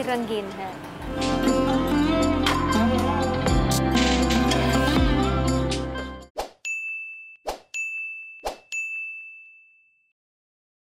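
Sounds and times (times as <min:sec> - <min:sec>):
bell-like dings: 0:06.6 - 0:10.2.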